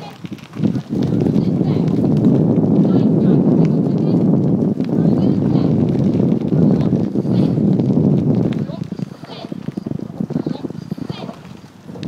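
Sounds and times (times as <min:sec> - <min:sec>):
wind rumbling on microphone: 0:00.0 - 0:12.0.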